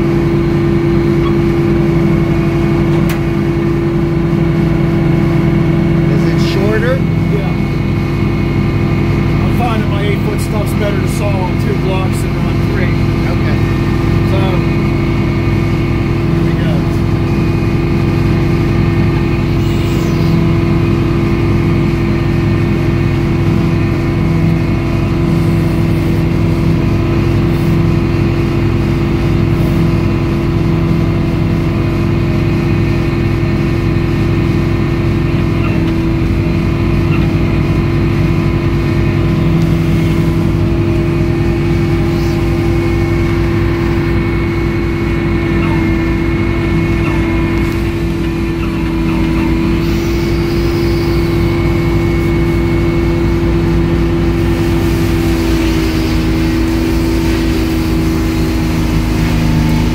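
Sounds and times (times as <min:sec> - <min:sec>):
sawmill hydraulics droning: 0:00.0 - 0:59.9.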